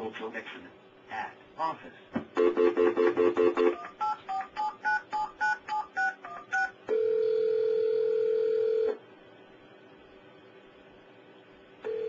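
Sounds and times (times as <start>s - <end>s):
touch-tone dialing beeps: 2.4s - 7.5s
phone ringback tone: 2.4s - 8.9s.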